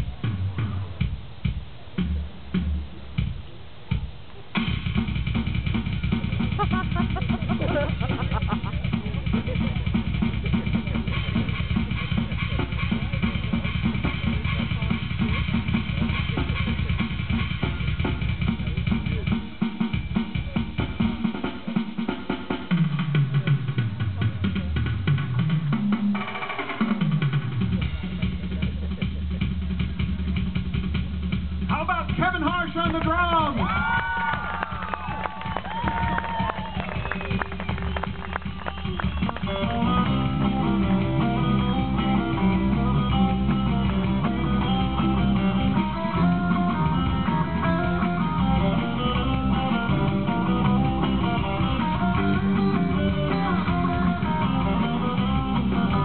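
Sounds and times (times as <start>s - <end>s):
drum kit solo: 0.0s - 56.0s.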